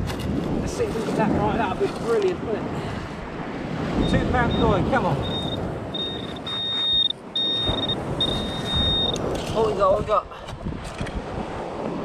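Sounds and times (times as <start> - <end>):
pinpointer high beeps: 4.0 - 9.2.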